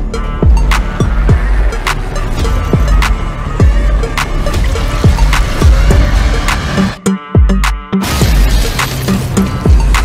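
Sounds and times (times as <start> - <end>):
heavy trailer music: 0.0 - 10.0.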